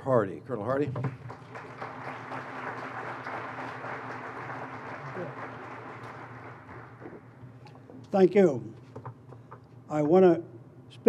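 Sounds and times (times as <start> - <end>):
audience applauding: 1.1 - 7.4.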